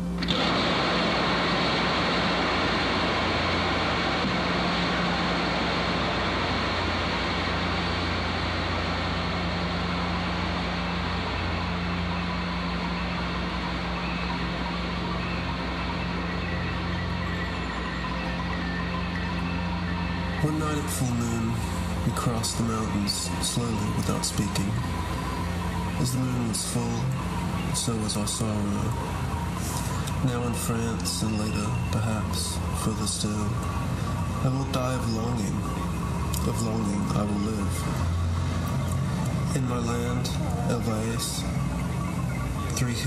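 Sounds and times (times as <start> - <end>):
low electrical hum: 0.0 - 43.0.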